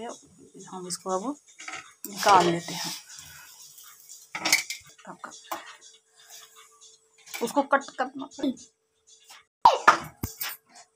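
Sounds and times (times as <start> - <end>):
steel kitchenware scraping and rattling: 1.4 - 7.9.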